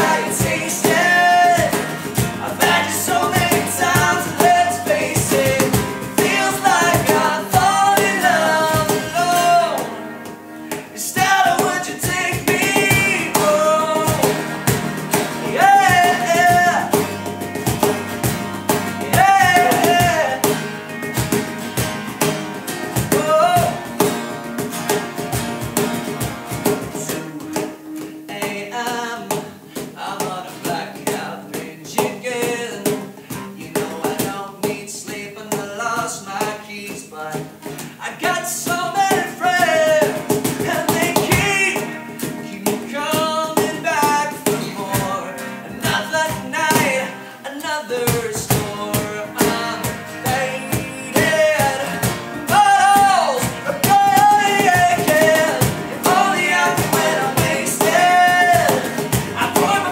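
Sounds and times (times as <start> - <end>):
male lead vocal: 0.0 - 10.1, 10.8 - 14.5, 15.4 - 17.0, 19.0 - 20.6, 23.0 - 23.8, 26.8 - 59.9
bass guitar: 0.0 - 27.3, 48.5 - 59.9
cajon beat: 0.0 - 59.9
strummed acoustic guitars: 0.0 - 59.9.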